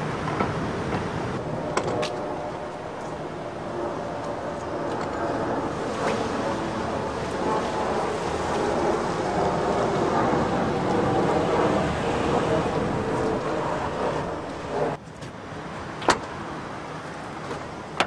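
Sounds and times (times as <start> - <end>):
street noise: 0.0 - 18.0.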